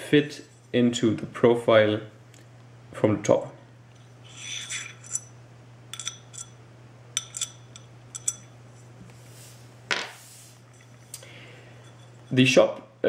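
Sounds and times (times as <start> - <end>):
metal nut clinking in metal groove: 5.9 - 6.6.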